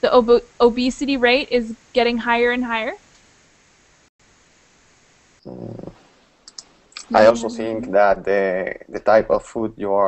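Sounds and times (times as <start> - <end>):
faint line hiss: 0.0 - 10.0
short low voiced sound: 5.5 - 10.0.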